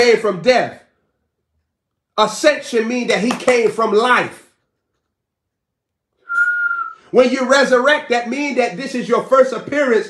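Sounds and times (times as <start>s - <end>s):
short high whistle: 6.2s - 7.1s.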